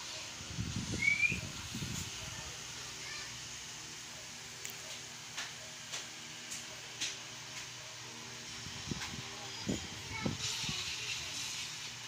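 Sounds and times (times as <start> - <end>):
electric fan hissing: 0.0 - 12.0.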